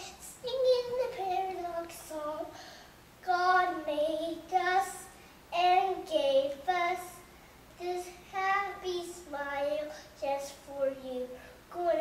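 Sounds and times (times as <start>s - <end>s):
young boy singing: 0.0s - 2.6s, 3.2s - 12.0s.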